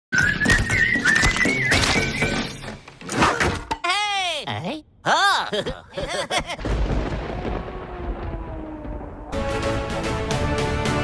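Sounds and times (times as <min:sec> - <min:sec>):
rolling thunder rumble: 0:06.6 - 0:09.6.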